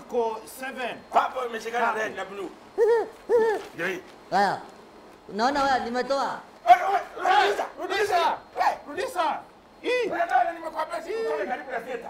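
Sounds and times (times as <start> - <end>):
person making hooting calls: 2.8 - 3.8.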